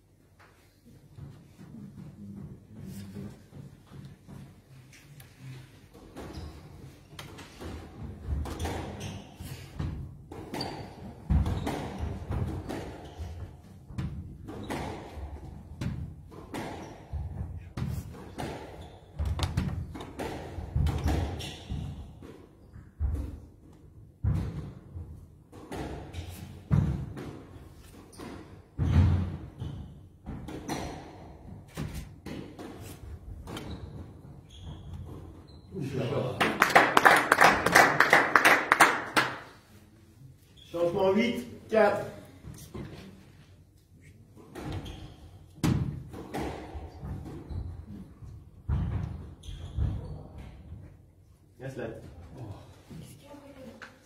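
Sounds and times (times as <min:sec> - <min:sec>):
squash ball hits: 0:07.3 - 0:22.0.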